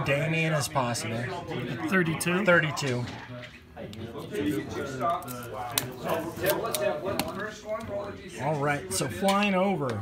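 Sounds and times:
indistinct talk: 0.0 - 10.0.

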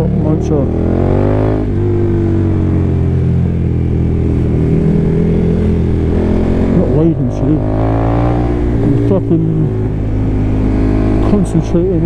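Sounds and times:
motorcycle engine revving: 0.0 - 12.0
road and wind noise: 0.0 - 12.0.

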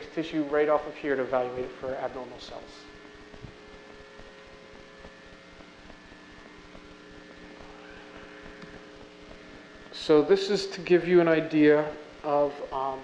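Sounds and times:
faint room hum with tones: 0.0 - 13.0.

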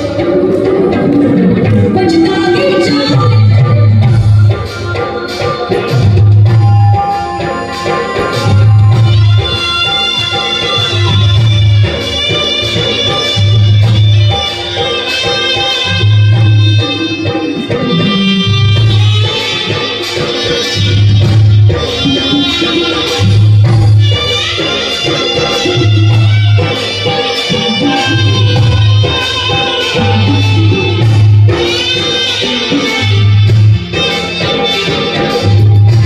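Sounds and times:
devotional music through loudspeakers: 0.0 - 36.0
hand percussion: 0.0 - 36.0.

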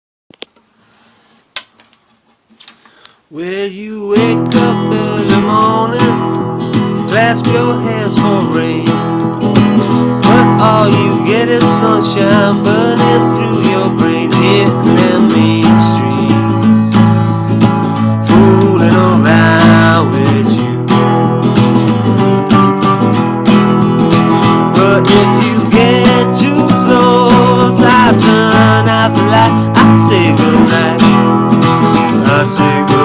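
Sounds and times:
acoustic guitar strumming: 3.4 - 33.0
sliding bending guitar notes: 4.1 - 33.0.

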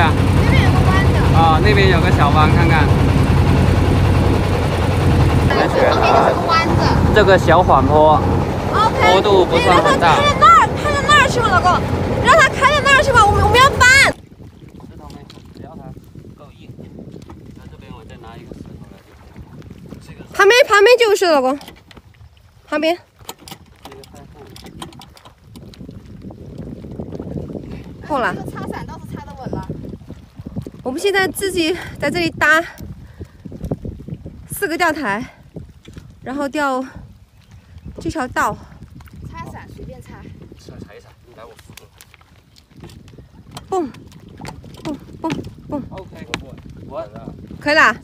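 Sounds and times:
boat motor humming: 0.0 - 15.6, 17.2 - 41.0, 41.8 - 48.0
low wind rumble on microphone: 0.0 - 48.0
water and air rushing: 0.0 - 48.0.

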